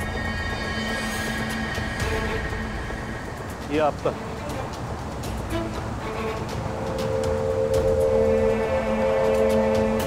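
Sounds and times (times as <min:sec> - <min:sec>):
sustained music chord: 0:06.4 - 0:10.0.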